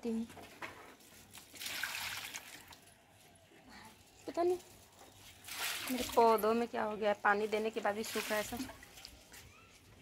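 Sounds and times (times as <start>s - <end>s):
water pouring onto plants: 1.2s - 2.9s, 5.2s - 6.5s, 7.4s - 9.3s.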